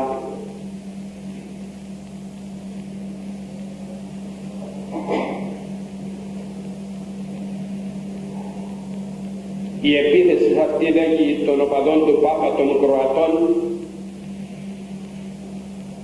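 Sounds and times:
low electrical hum: 0.0s - 16.0s.

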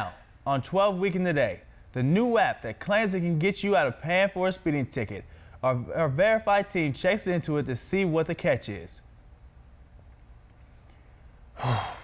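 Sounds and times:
man sighing: 11.6s - 12.0s.

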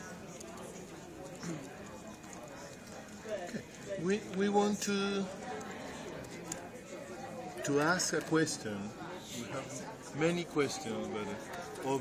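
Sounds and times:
murmur of conversation: 0.0s - 12.0s.

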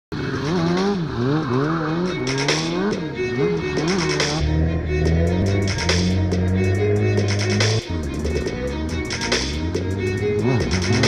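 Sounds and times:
motorbike engine revving: 0.1s - 11.0s.

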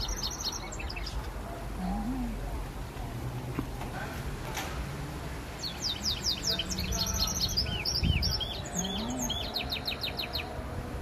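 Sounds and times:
bird singing: 0.0s - 1.3s, 5.6s - 10.6s.

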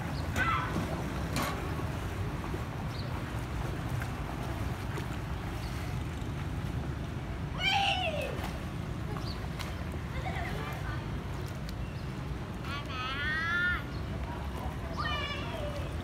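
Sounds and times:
children calling and shouting: 0.2s - 1.0s, 12.6s - 14.1s, 14.8s - 16.0s.

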